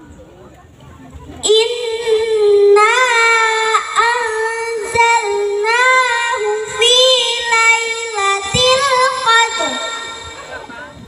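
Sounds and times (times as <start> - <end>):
girl chanting melodic recitation: 1.4 - 10.6.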